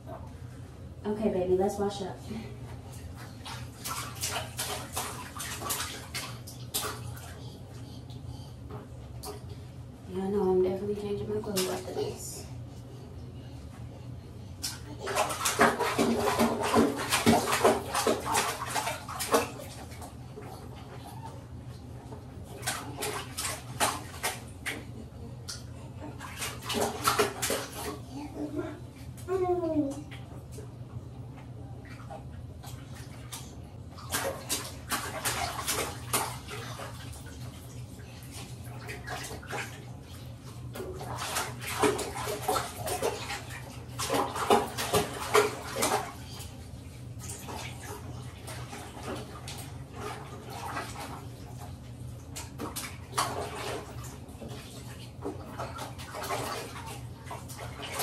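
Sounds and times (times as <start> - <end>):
water splashing in a bathtub: 0.0 - 58.0.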